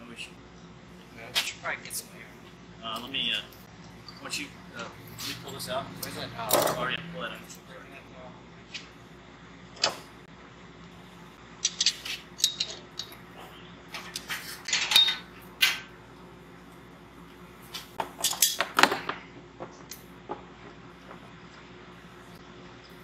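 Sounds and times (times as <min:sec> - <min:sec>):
steady low hum: 0:00.0 - 0:23.0.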